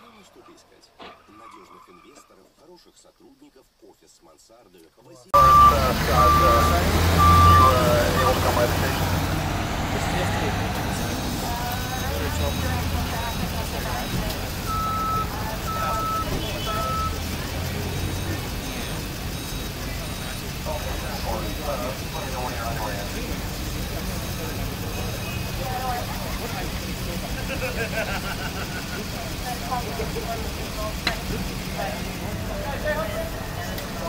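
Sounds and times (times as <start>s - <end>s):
street voices: 0.0s - 34.0s
truck engine hum: 5.3s - 34.0s
reversing alarm beeping: 5.4s - 9.4s, 10.9s - 26.8s.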